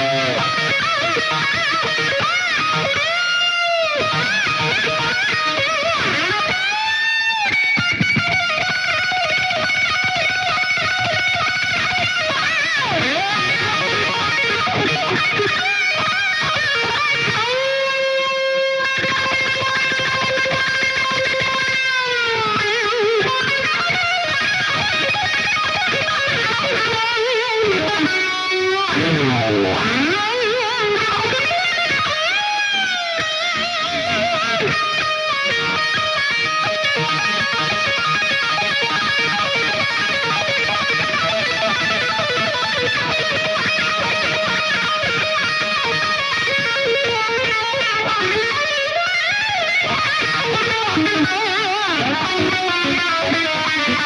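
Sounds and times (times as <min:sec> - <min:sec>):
electric guitar solo: 0:00.0 - 0:54.0.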